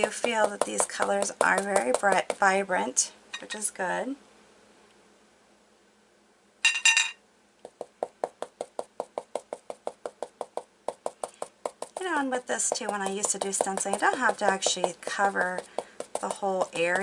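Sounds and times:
stencil brush tapping on fabric: 0:00.0 - 0:02.5, 0:07.6 - 0:17.0.

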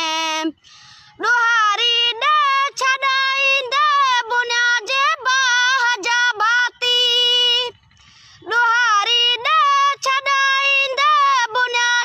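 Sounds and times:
boy singing unaccompanied: 0:00.0 - 0:07.8, 0:08.4 - 0:12.0
singer breaths: 0:00.6 - 0:01.2, 0:07.8 - 0:08.5.

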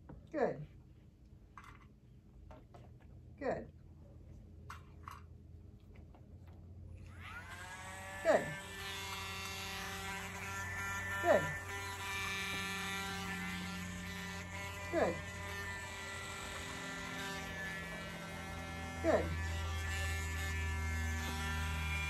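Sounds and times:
pet nail grinder whining: 0:07.0 - 0:22.0.

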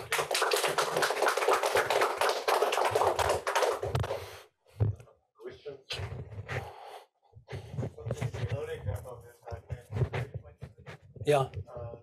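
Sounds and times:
audience applauding: 0:00.0 - 0:04.3.

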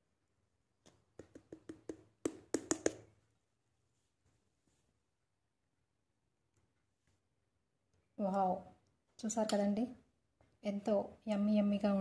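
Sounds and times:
knocking on papaya shell: 0:01.2 - 0:03.0.

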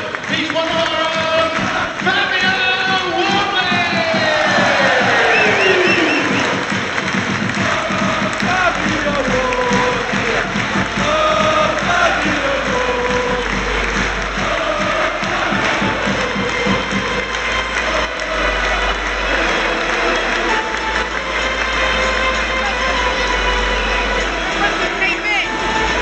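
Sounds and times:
football crowd hubbub: 0:00.0 - 0:26.0
music over public address: 0:00.0 - 0:26.0.

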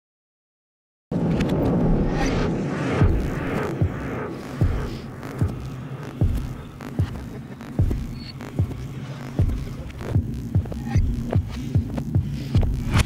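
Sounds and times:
low droning hum: 0:01.2 - 0:13.0
deep repeating thud: 0:02.3 - 0:13.0.

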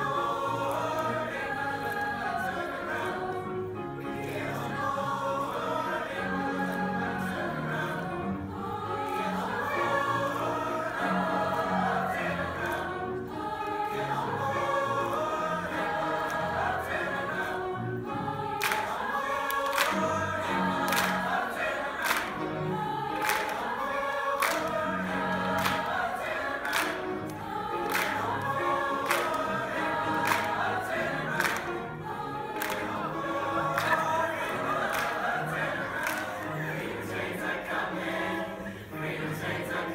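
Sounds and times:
choir singing in harmony: 0:00.0 - 0:39.9
people clapping on the beat: 0:13.7 - 0:17.5, 0:18.4 - 0:38.3.

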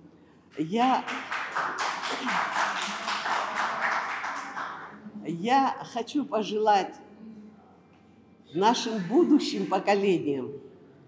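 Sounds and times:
audience applauding: 0:01.0 - 0:05.0.

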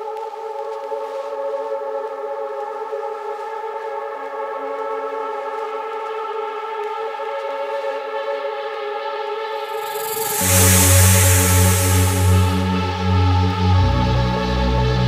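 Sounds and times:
sustained synthesizer chord: 0:09.6 - 0:15.0.

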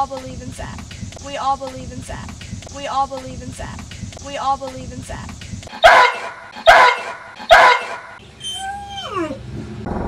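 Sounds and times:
dog barking: 0:05.7 - 0:08.2
dog howling: 0:05.8 - 0:09.4.

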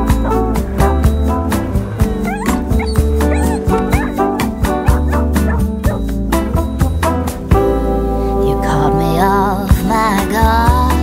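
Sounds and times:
dog yipping and whining: 0:00.0 - 0:07.1
pop song with steady beat: 0:05.5 - 0:11.0.

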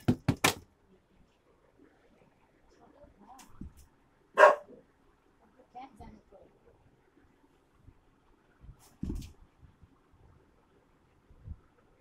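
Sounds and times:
faint small sounds: 0:00.7 - 0:12.0
small dog barking: 0:04.4 - 0:04.8.

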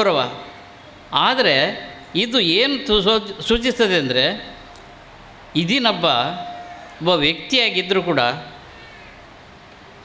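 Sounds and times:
man's voice through microphone: 0:00.0 - 0:04.8, 0:05.5 - 0:08.6
faint hall hiss: 0:00.0 - 0:10.0.

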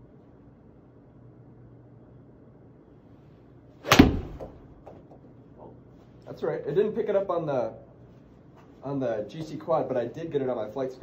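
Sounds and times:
golf club striking ball: 0:03.8 - 0:05.0.

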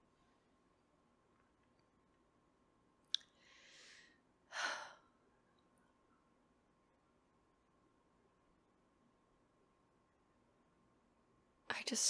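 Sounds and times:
woman sighing: 0:04.5 - 0:05.1.

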